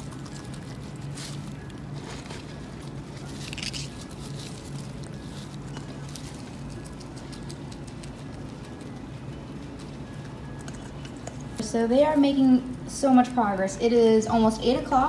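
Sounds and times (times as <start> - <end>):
leaf rustling: 0.0 - 8.7
guinea pigs crunching greens: 0.0 - 15.0
low steady hum: 0.0 - 15.0.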